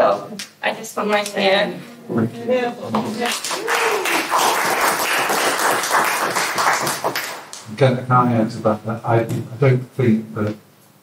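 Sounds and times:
audience applauding: 0:03.2 - 0:07.7.

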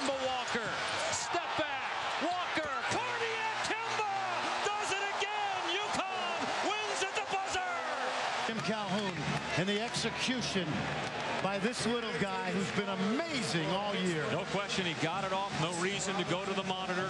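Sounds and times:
crowd cheering and shouting: 0:00.0 - 0:17.0.

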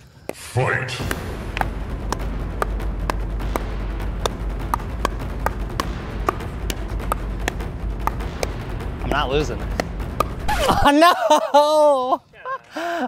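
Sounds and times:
paddles popping against ball: 0:01.0 - 0:08.6, 0:09.6 - 0:10.6
steady low rumble: 0:01.0 - 0:10.8.

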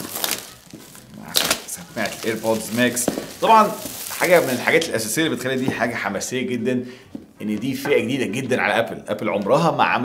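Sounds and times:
plastic wrap crinkling and tearing: 0:00.0 - 0:06.0.

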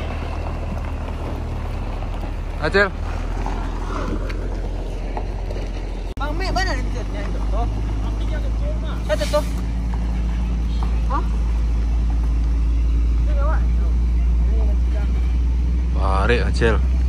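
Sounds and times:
diesel truck engine droning: 0:00.0 - 0:17.0.

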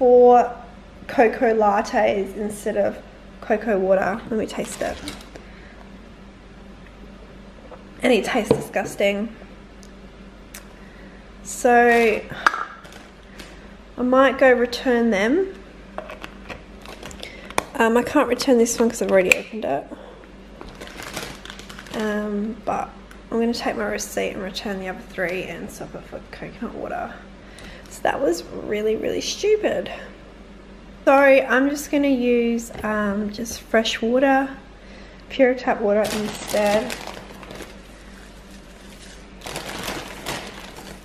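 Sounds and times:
plastic bag crinkling: 0:04.2 - 0:05.5, 0:11.9 - 0:13.7, 0:16.8 - 0:17.7, 0:20.6 - 0:22.4, 0:36.0 - 0:41.0
handling cardboard drink carton: 0:36.0 - 0:37.8.

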